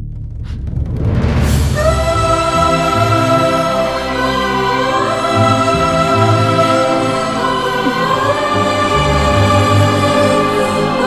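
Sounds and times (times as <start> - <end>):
choir singing held chords: 1.8 - 11.0
orchestral accompaniment: 1.8 - 11.0.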